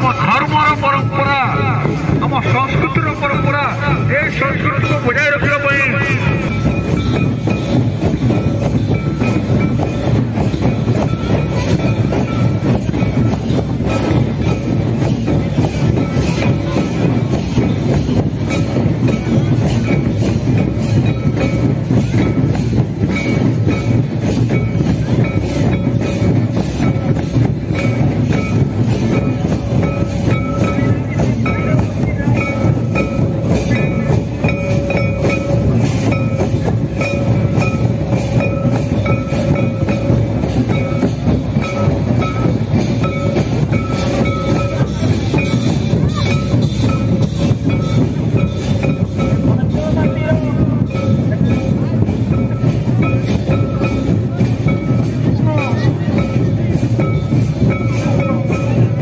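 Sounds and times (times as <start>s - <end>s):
barrel drums playing fast beat: 0.0s - 59.0s.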